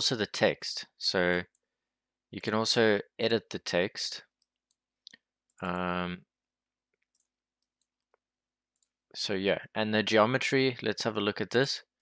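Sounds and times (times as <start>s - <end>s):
computer mouse clicks: 7.0s - 9.0s.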